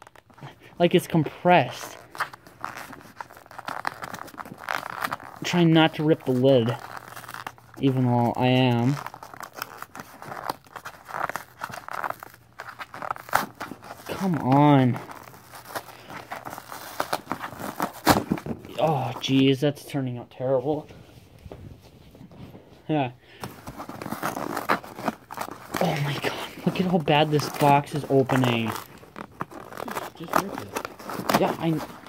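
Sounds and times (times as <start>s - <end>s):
cardboard scraping and tearing: 1.6s - 19.4s, 23.4s - 32.0s
cardboard cracking: 1.7s - 19.4s, 23.4s - 32.0s.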